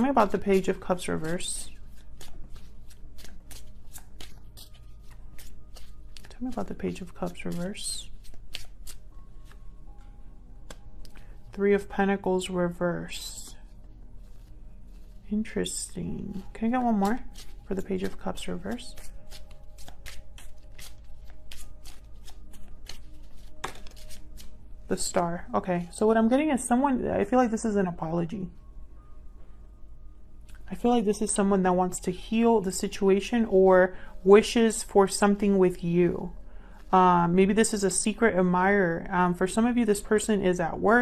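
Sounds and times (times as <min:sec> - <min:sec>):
soft background music: 0:00.0 - 0:41.0
cards being shuffled: 0:00.3 - 0:09.6, 0:14.2 - 0:24.6.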